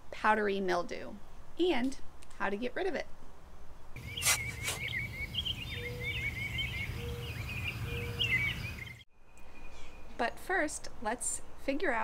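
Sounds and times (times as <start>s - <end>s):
birds chirping rapidly: 4.0s - 10.1s.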